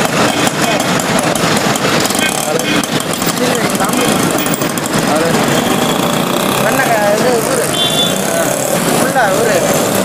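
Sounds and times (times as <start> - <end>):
traffic: 0.0 - 10.0.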